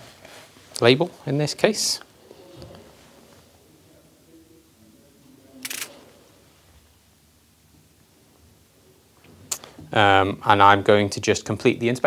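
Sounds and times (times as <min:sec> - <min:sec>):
camera shutter click: 0:05.6 - 0:05.9.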